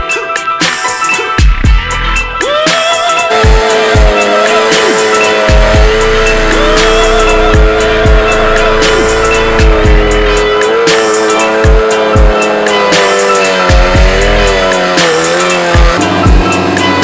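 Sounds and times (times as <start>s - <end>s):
hip-hop music with heavy beat: 0.0s - 17.0s
motorcycle engine at high revs: 3.3s - 17.0s.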